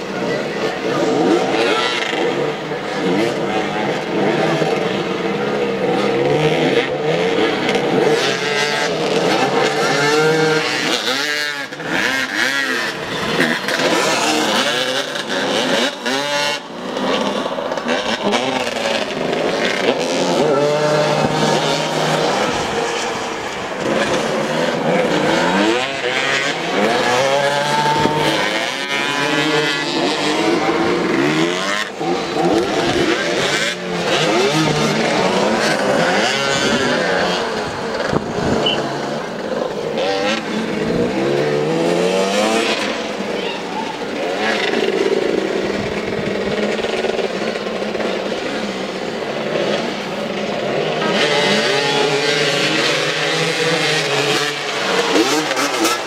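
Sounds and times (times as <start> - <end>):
motorcycle engines revving: 0.0 - 56.0.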